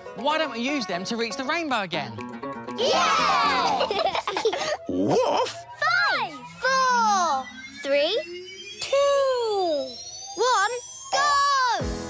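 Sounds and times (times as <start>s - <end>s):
thin synthesized rising tone: 2.8s - 11.8s.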